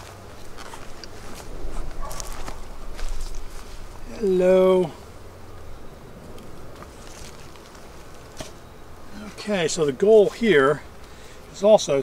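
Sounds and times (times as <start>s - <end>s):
honeybees humming: 0.0s - 12.0s.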